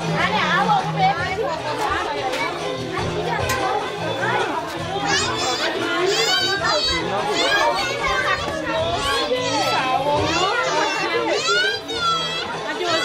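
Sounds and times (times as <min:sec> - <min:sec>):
faint music: 0:00.0 - 0:13.0
women and children talking: 0:00.0 - 0:13.0.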